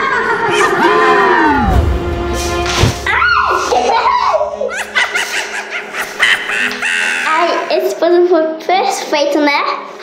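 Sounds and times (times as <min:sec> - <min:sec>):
girl laughing: 0:03.4 - 0:07.7.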